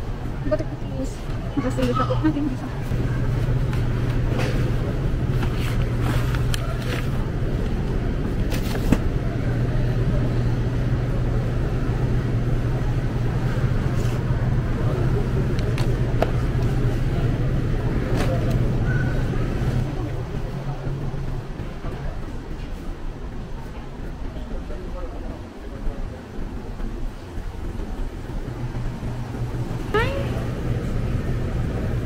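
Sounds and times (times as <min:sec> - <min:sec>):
supermarket background hum: 0:00.0 - 0:32.0.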